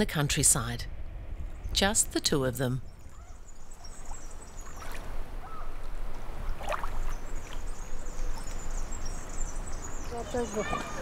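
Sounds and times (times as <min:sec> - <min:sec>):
low wind rumble: 0:00.0 - 0:11.0.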